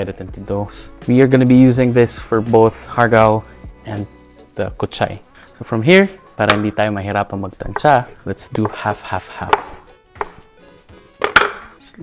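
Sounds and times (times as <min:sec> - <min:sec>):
scraper knocking on wooden board: 0:08.5 - 0:10.4.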